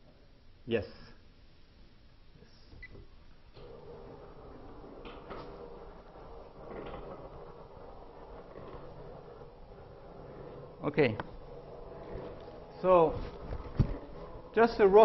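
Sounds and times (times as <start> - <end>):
projection screen motor humming: 2.7 - 15.0.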